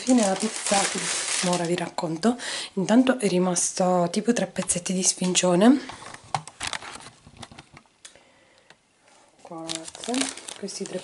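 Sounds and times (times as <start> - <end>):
paper wrapping rustling: 0.0 - 2.2, 6.1 - 7.7, 9.4 - 11.0.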